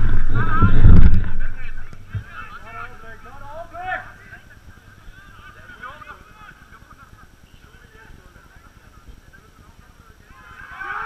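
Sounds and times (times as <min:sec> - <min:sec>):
low rumble on microphone: 0:00.0 - 0:02.4
distant players shouting: 0:10.3 - 0:11.0.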